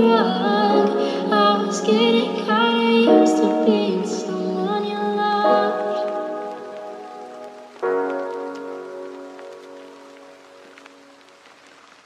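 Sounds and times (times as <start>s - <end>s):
slow song chords: 0.0s - 11.2s
steady rain: 0.0s - 12.0s.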